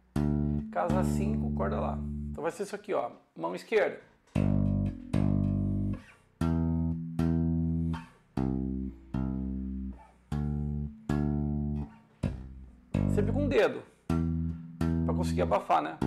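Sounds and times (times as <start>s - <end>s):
electric bass notes tapped: 0.0s - 2.4s, 4.3s - 16.0s.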